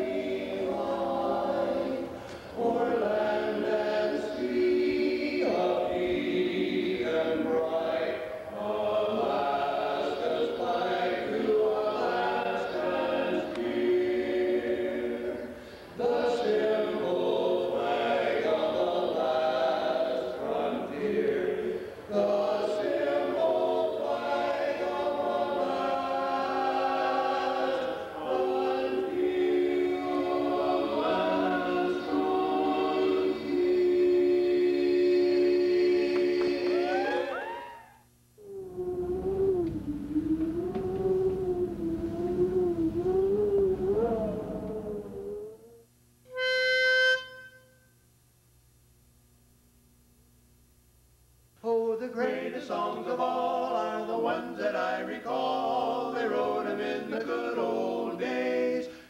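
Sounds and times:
men singing a cappella harmony: 0:00.0 - 0:37.8, 0:51.6 - 0:59.0
wavering sliding held note: 0:36.8 - 0:47.9
pitch pipe note: 0:36.9 - 0:47.9.

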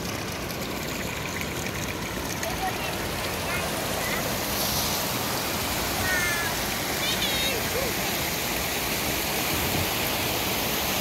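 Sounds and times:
stream rushing over rocks: 0:00.0 - 0:11.0.

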